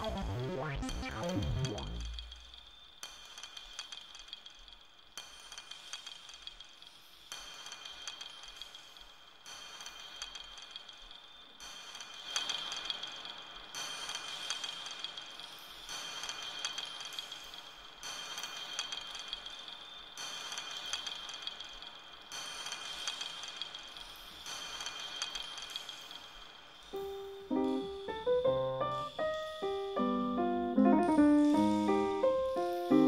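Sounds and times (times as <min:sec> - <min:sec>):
electronic clicking and clinking: 0:00.0 - 0:04.8.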